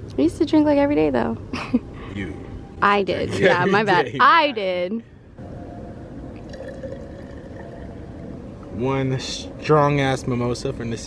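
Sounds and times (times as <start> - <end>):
sparkling wine pouring into glass: 6.4 - 8.4.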